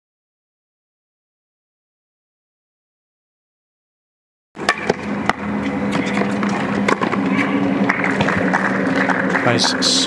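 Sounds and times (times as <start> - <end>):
tennis ball bouncing on hard court: 4.6 - 9.4
rackets hitting tennis ball: 4.6 - 9.9
steady low hum: 4.6 - 10.0.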